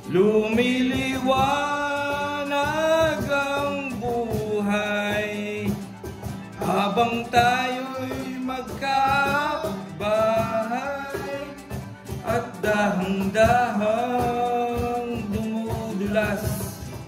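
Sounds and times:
instrumental backing music: 0.0 - 17.0.

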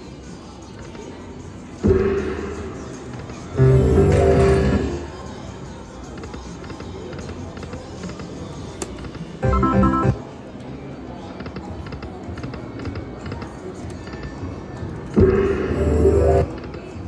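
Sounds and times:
video slot machine game sounds: 3.6 - 5.1, 9.4 - 10.3, 15.2 - 16.5
jingle of stacked tones: 9.4 - 10.2.

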